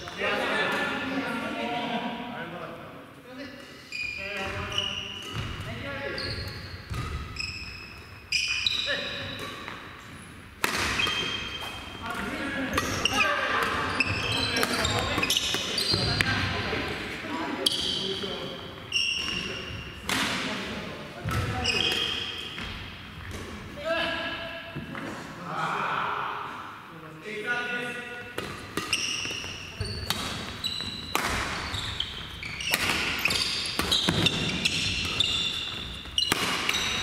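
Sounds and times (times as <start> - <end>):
sneakers squeaking on wooden floor: 3.9 - 16.6, 17.6 - 20.1, 21.2 - 23.4, 28.4 - 37.0
rackets hitting shuttlecocks: 10.6 - 16.4, 28.3 - 37.0.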